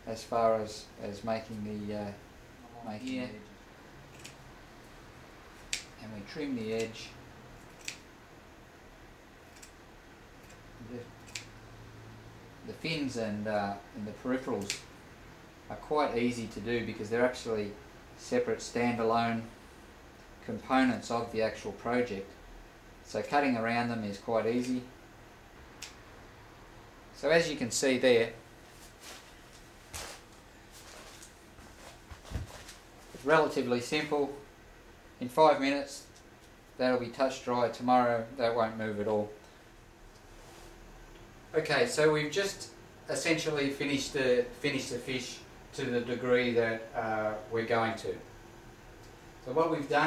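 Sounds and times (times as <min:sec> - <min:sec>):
scissors snipping fabric: 0:07.6 - 0:08.0, 0:09.5 - 0:09.8
soft rustle: 0:28.5 - 0:33.6, 0:40.2 - 0:40.8.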